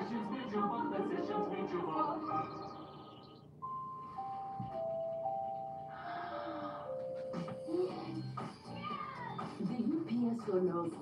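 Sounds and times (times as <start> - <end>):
television music: 0.0 - 11.0.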